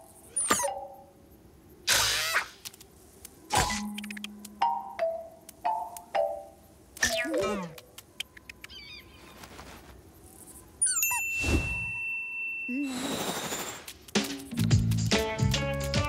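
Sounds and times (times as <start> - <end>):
high chirps: 0.0 - 1.2.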